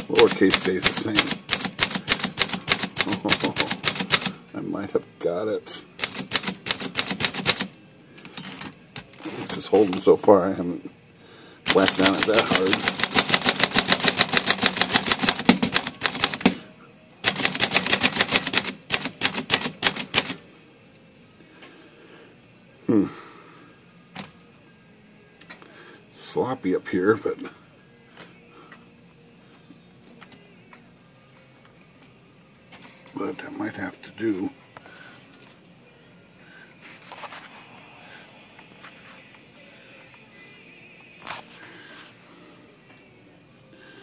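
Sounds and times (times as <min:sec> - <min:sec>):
manual typewriter typing: 0:00.0 - 0:04.4, 0:06.0 - 0:07.7, 0:11.7 - 0:16.6, 0:17.2 - 0:20.4.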